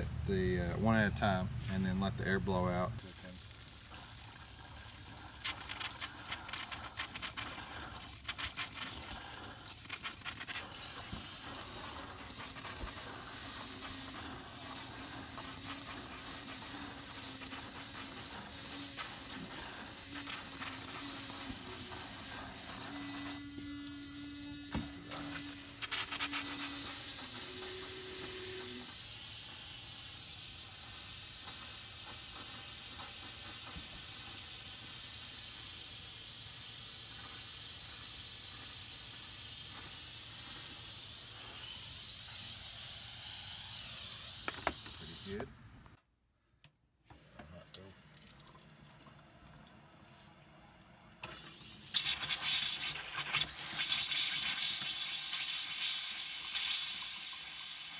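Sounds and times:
air and water spraying hiss: 3.0 - 45.5, 51.2 - 57.9.

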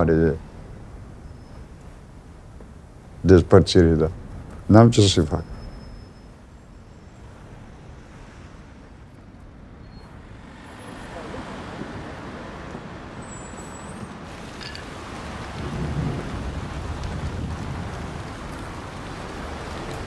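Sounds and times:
traffic rumble: 0.0 - 20.0
heavy vehicle passing: 7.0 - 20.0.

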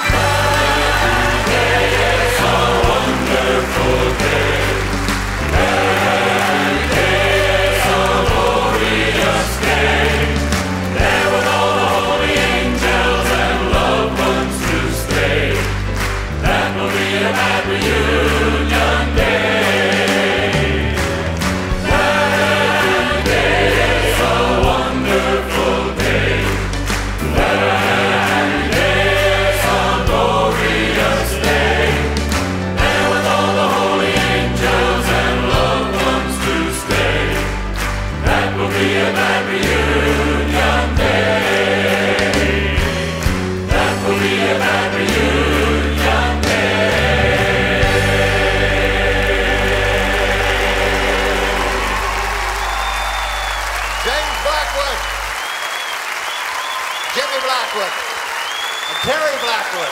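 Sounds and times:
male voices and choir singing: 0.0 - 54.0
piano and band: 0.0 - 59.9.

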